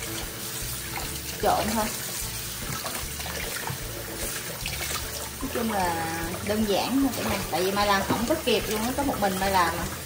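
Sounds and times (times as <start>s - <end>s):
faucet water splashing in bowl: 0.0s - 10.0s.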